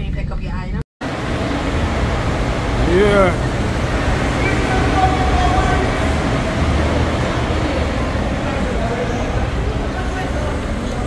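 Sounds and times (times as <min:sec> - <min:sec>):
cars driving past and idling: 0:01.0 - 0:11.0
faint voices: 0:01.1 - 0:11.0.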